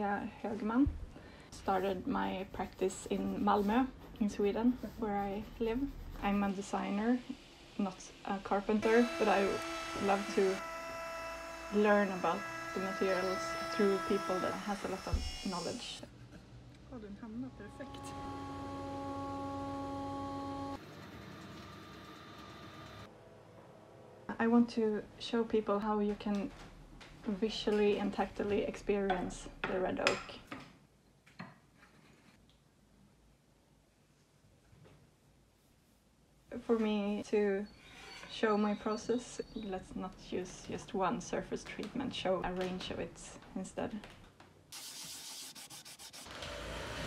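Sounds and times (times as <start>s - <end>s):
scratchy rubbing on wood: 1.6s - 6.8s, 11.5s - 15.9s, 44.8s - 46.3s
faint hum with high tones: 6.5s - 20.8s
steady hum of held tones: 8.1s - 20.8s.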